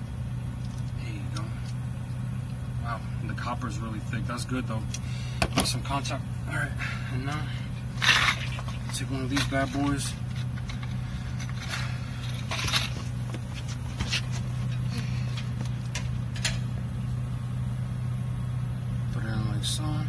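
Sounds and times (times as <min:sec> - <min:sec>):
low engine-like hum: 0:00.0 - 0:20.0.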